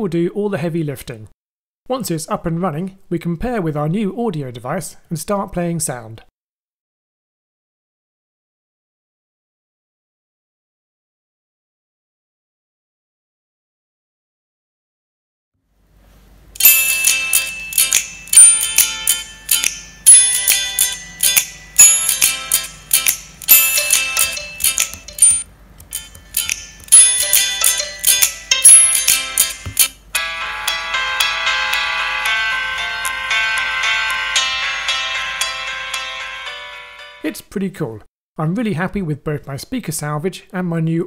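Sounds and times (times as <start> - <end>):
instrumental music through small speaker: 16.6 - 37.3.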